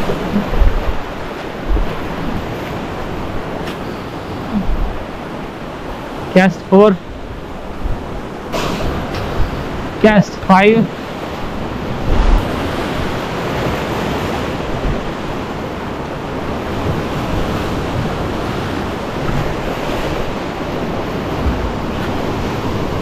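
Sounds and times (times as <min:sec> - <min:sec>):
surf breaking over rocks: 0:00.0 - 0:05.2
low buffet of surf: 0:00.0 - 0:23.0.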